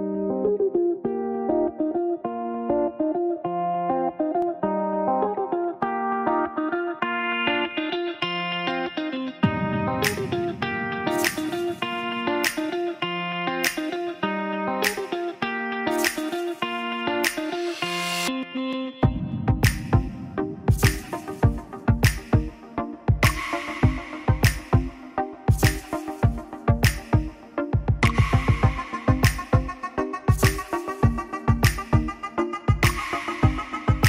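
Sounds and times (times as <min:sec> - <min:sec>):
plucked guitar melody: 0:00.0 - 0:34.0
sharp percussive hits: 0:09.5 - 0:12.8, 0:15.9 - 0:16.6, 0:19.0 - 0:22.5, 0:25.5 - 0:26.2, 0:30.3 - 0:32.1.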